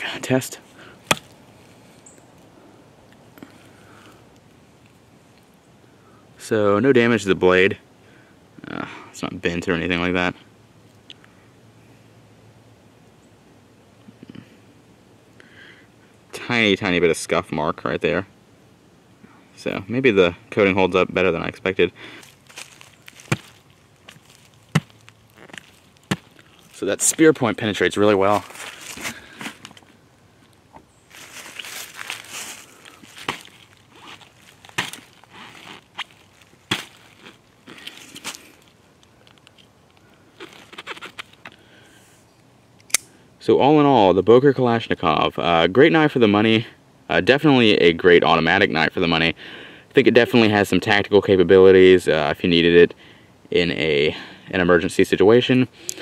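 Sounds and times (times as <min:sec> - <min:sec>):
blade thunking into wood: 0:01.1 - 0:01.3.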